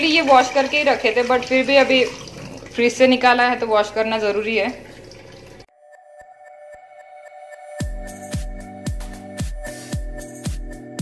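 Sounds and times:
tap water running into sink: 0.0 - 5.7
soft background music: 5.6 - 11.0.

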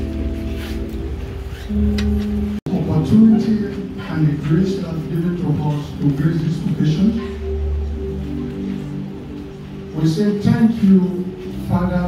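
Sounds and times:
deep bass note: 0.0 - 4.5
electronic keyboard chords: 0.0 - 12.0.

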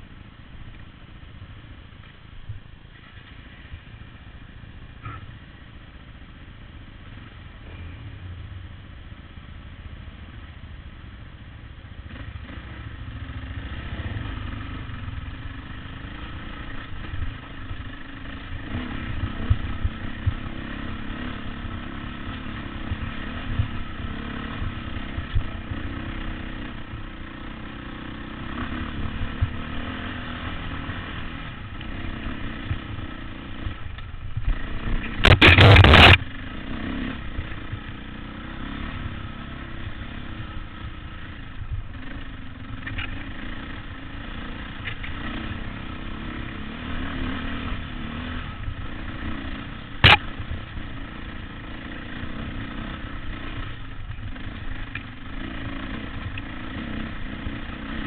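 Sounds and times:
dirt bike engine running: 2.4 - 58.0
bike knocking and clattering: 35.0 - 36.2.

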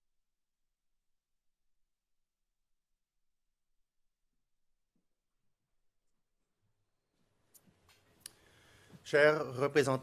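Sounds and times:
faint room hiss: 6.5 - 10.0.

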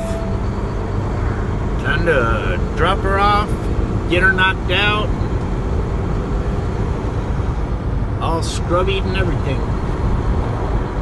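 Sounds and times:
truck diesel engine rumble: 0.0 - 11.0.

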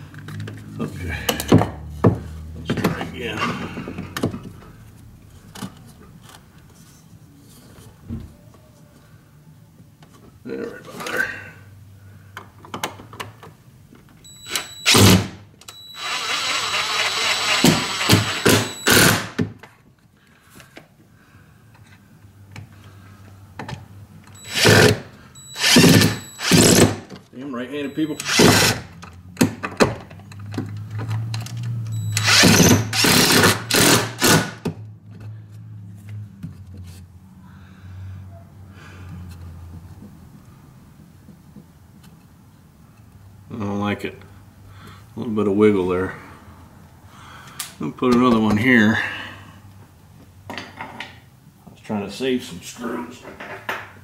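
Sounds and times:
cordless drill driving screws: 14.5 - 19.4, 24.4 - 27.0, 27.9 - 28.8, 32.0 - 34.6.

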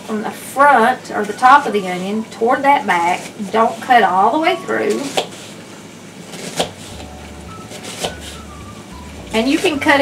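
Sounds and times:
knife cutting onion on board: 5.0 - 5.5, 6.3 - 8.5.

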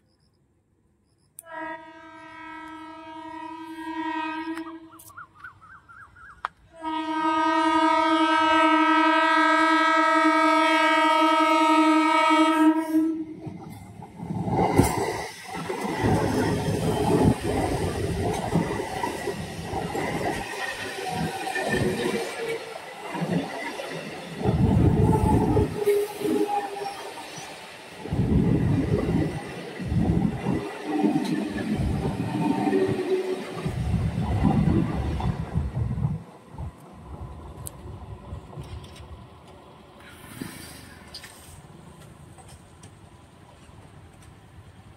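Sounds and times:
train wheels clattering on rails: 13.4 - 44.9.

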